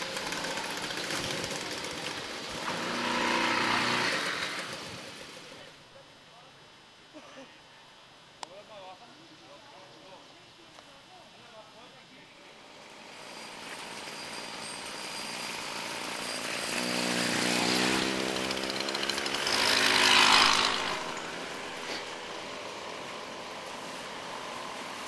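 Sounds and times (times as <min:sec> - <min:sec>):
motorized bicycle engines passing: 0:00.0 - 0:05.8, 0:12.4 - 0:25.0.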